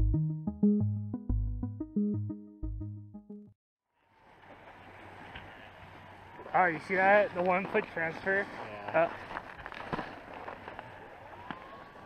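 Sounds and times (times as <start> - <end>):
skis sliding over snow: 4.1 - 12.0
small clicks and crackles: 6.4 - 12.0.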